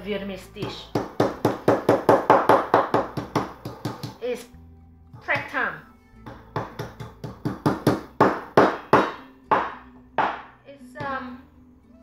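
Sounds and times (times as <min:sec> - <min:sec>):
mallet knocking on wooden board: 0:00.6 - 0:04.2, 0:06.2 - 0:11.2.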